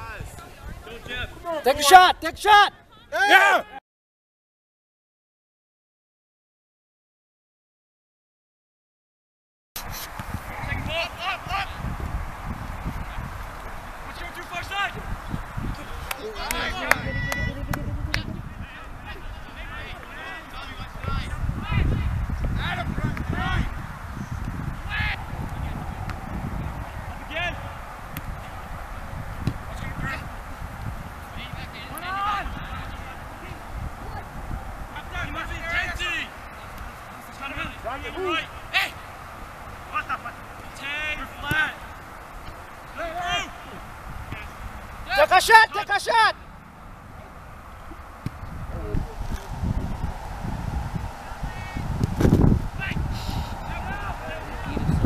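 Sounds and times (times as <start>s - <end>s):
distant people shouting: 1.8s - 3.8s, 42.9s - 46.4s, 52.8s - 55.0s
low rumbling on microphone: 10.2s - 14.1s, 20.8s - 31.8s, 47.0s - 55.0s.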